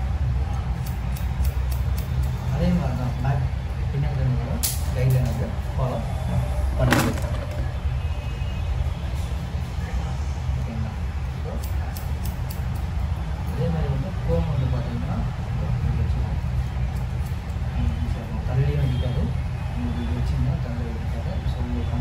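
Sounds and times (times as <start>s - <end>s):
scissors snipping hair: 0.5s - 2.6s, 11.5s - 13.0s, 16.9s - 17.7s.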